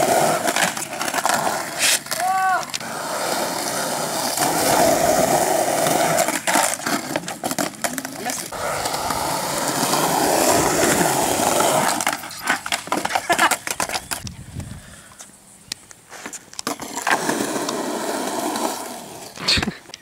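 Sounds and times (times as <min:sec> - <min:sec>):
skateboard clacks: 0:00.0 - 0:14.3
skateboard wheels rolling on concrete: 0:00.0 - 0:20.0.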